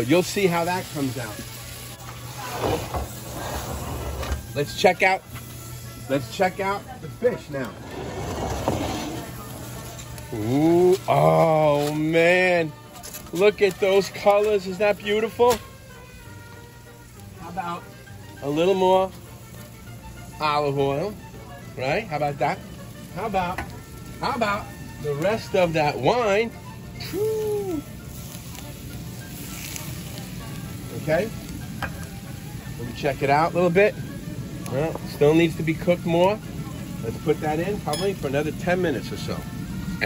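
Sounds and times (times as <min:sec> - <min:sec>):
faint sizzle in hot pan: 0:00.0 - 0:07.8, 0:09.0 - 0:12.8, 0:13.6 - 0:40.0
wood fire rumbling: 0:02.0 - 0:05.4, 0:06.1 - 0:12.1, 0:23.2 - 0:29.3
pan scraping across stone: 0:02.3 - 0:04.5, 0:07.5 - 0:10.1.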